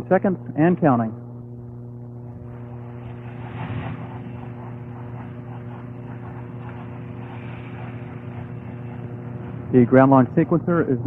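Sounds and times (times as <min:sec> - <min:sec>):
hum of fixed tones: 0:00.0 - 0:11.0
even rushing noise: 0:02.3 - 0:10.3.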